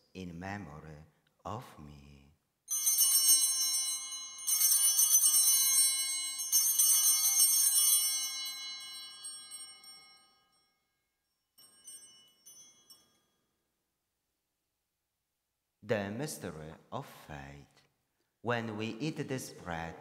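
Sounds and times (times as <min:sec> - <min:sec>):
small high-pitched bells jangling: 0:02.7 - 0:13.7.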